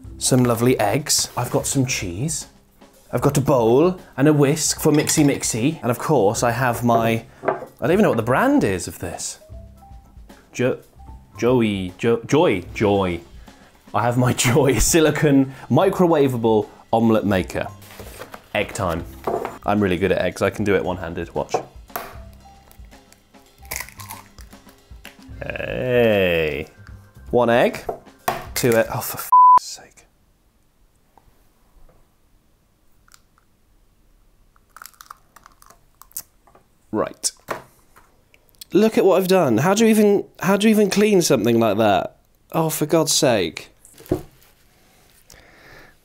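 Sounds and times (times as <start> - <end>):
quiet background music: 0.0 - 29.4, 38.6 - 44.8
egg shell crunching: 22.2 - 25.2, 34.5 - 36.4.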